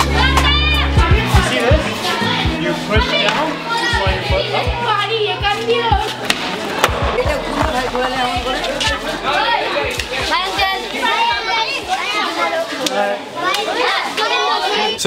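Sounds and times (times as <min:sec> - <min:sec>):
background music with steady beat: 0:00.0 - 0:12.1
children chattering and shouting: 0:00.0 - 0:15.0.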